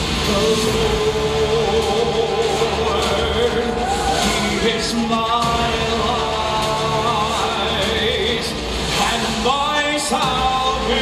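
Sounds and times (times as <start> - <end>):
show tune singing with instruments: 0.0 - 11.0.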